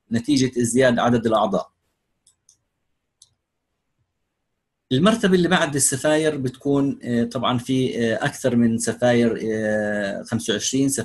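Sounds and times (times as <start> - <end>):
faint computer mouse clicks: 2.2 - 3.4.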